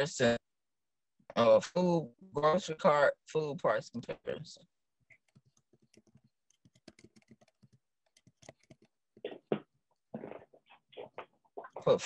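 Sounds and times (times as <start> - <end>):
faint typing on keyboard: 5.1 - 9.3.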